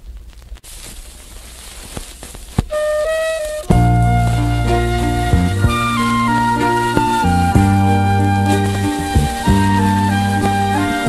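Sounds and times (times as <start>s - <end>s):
recording hiss: 0.0s - 11.0s
held flute-like note: 2.7s - 11.0s.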